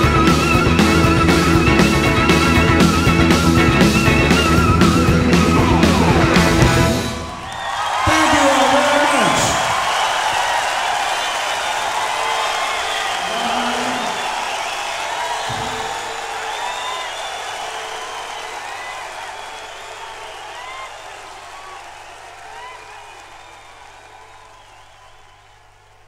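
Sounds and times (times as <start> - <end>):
audience applauding and cheering: 0.0 - 26.0
crowd shouts: 0.0 - 26.0
crowd whistling: 0.0 - 26.0.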